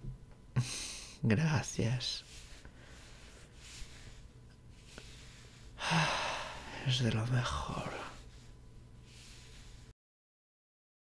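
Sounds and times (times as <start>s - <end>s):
man breathing quietly: 0.6s - 1.2s, 2.2s - 9.9s
man humming: 5.8s - 6.6s
breathy sigh: 5.8s - 6.8s.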